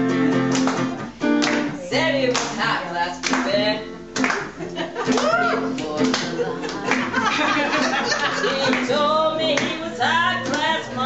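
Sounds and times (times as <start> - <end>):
acoustic guitar strumming: 0.0 - 11.0
person singing: 4.9 - 11.0.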